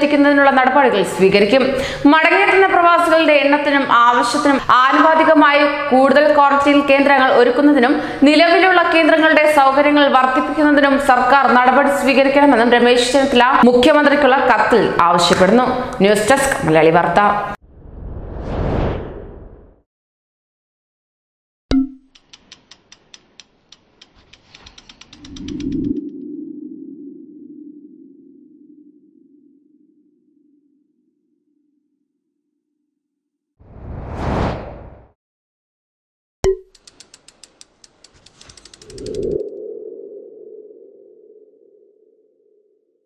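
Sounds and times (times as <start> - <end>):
sharp ticks speeding up: 22.1 - 26.1, 36.7 - 39.4
low hum: 24.5 - 31.8, 38.2 - 42.8.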